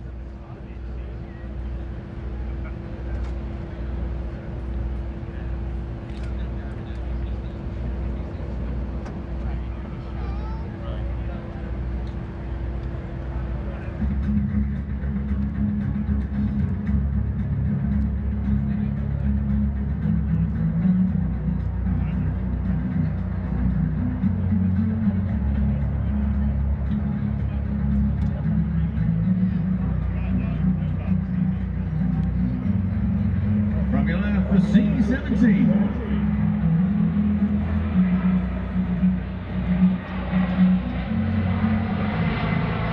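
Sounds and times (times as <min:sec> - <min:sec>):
jet aircraft engines rumbling: 0:00.0 - 0:42.9
music over loudspeakers: 0:32.7 - 0:42.4.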